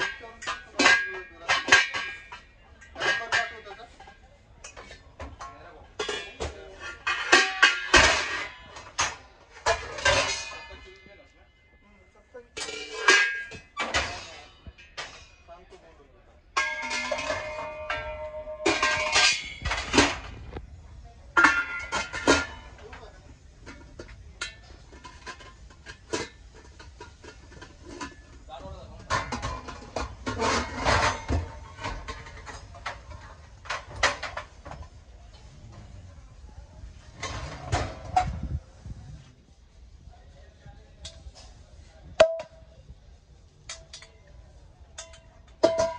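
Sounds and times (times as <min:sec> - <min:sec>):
brass pots clinking and knocking: 0:00.0 - 0:15.8, 0:16.4 - 0:36.0, 0:36.9 - 0:38.6, 0:41.0 - 0:45.9.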